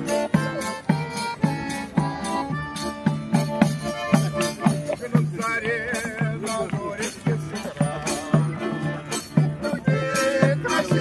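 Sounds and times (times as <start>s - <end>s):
button accordion folk dance tune: 0.0s - 11.0s
tambourine jingling: 0.0s - 11.0s.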